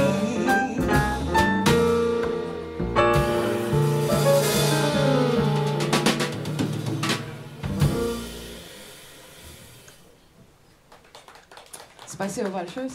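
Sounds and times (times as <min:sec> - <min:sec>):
jazz quartet playing: 0:00.0 - 0:09.9
drum and cymbal hits: 0:00.0 - 0:10.1.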